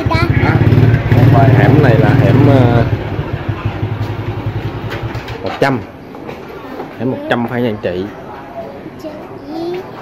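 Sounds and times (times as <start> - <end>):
small motorbike engine idling: 0.0 - 5.4.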